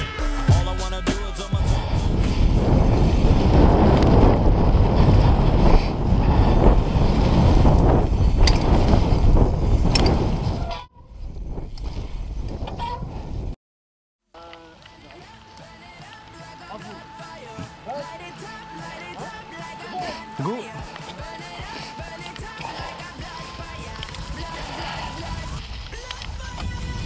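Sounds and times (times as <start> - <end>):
wind on microphone: 1.6 - 13.6
mountain bike rattling: 2.3 - 10.6, 14.4 - 27.0.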